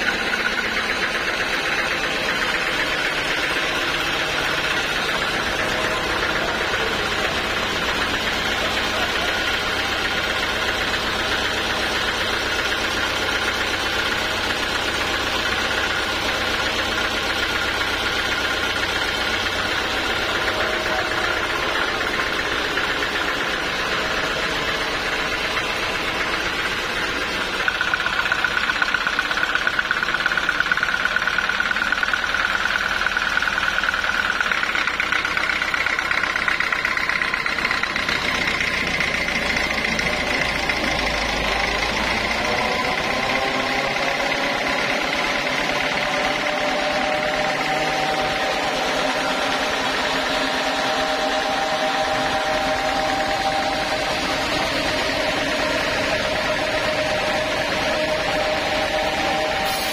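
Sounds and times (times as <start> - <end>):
steady mechanical whine: 0.0 - 59.9
band saw cutting log: 37.2 - 59.9.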